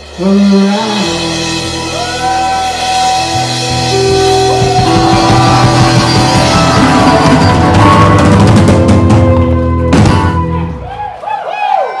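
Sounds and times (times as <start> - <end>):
rock band final hit: 1.6 - 10.9
voices whooping and cheering: 1.9 - 8.0, 10.2 - 12.0
guitar chord ringing: 2.4 - 10.6.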